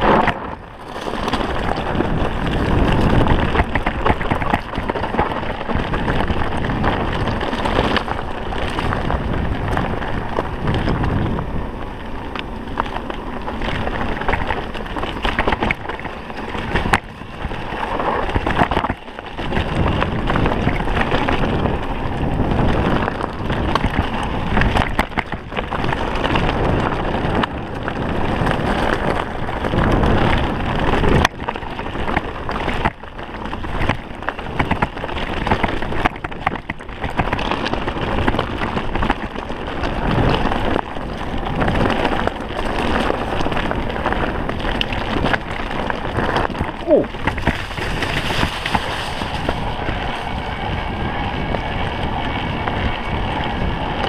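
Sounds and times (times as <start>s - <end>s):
bike knocks and rattles: 0.0s - 54.0s
wind buffeting microphone: 0.0s - 54.0s
tyres rushing over ground: 39.7s - 54.0s.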